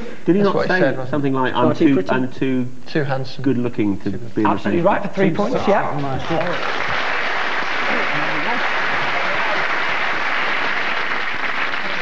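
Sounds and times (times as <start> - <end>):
audience applauding: 6.0 - 12.0.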